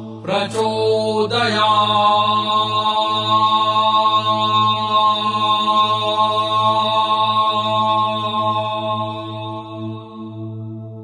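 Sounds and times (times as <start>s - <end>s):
man chanting: 0.2s - 9.3s.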